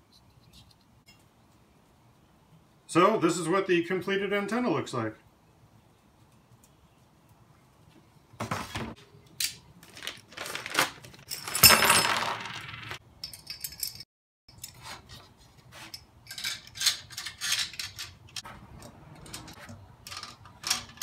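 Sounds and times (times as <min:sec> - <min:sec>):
plastic bag tearing and crinkling: 0:09.8 - 0:11.3
metal parts clinking and clicking: 0:11.2 - 0:15.2, 0:15.9 - 0:21.0.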